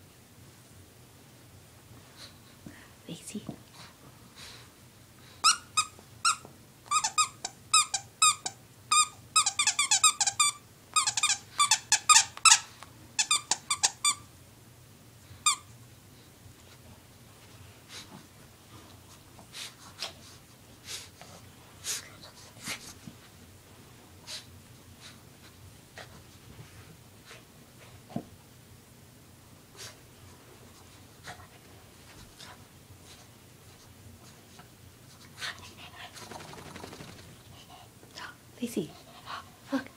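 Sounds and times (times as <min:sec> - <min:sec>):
dog toy squeaking: 0:05.4 - 0:14.2.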